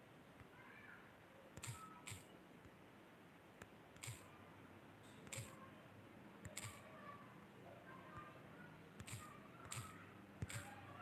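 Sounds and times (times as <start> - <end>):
faint short clicks: 6.4 - 6.8.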